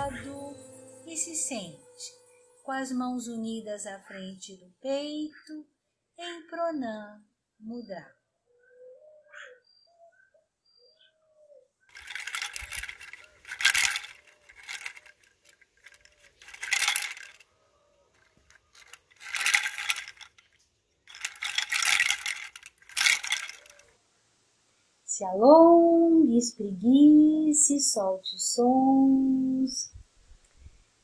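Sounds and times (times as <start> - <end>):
coconut shell wind chime clattering: 11.9 - 17.4, 18.2 - 20.5, 21.1 - 23.9.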